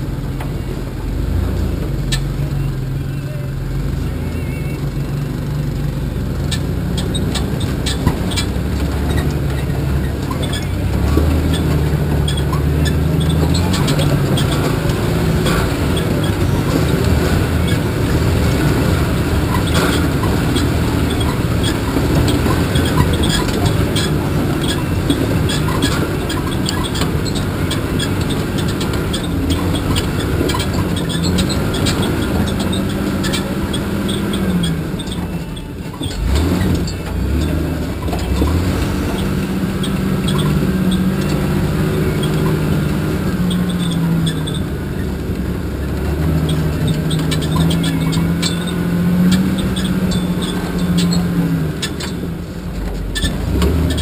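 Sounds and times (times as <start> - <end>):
engine running at low revs: 0.0 - 54.0
clanks and rattles: 5.2 - 54.0.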